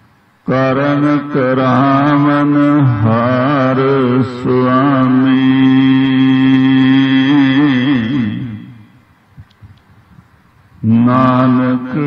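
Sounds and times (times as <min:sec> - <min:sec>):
man chanting: 0:00.5 - 0:09.0, 0:10.8 - 0:12.0.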